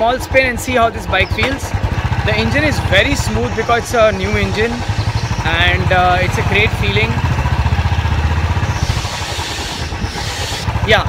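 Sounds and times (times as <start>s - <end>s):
motorcycle engine thumping: 0.3s - 11.0s
wind hiss: 8.2s - 10.9s.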